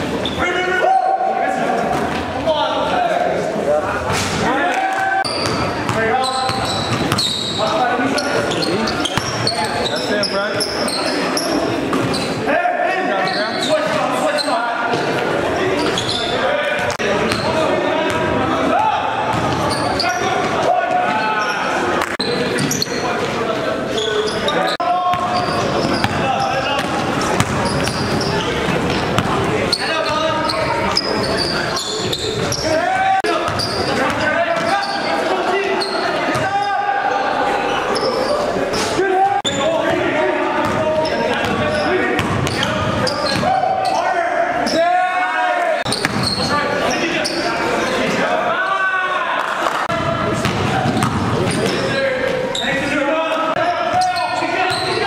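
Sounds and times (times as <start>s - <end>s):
echoing indistinct voices: 0.0s - 55.0s
basketball bouncing on court: 5.3s - 7.6s, 16.8s - 18.4s, 19.3s - 19.8s, 25.1s - 32.6s, 33.4s - 34.7s, 40.6s - 43.6s, 45.9s - 46.4s, 50.0s - 51.8s.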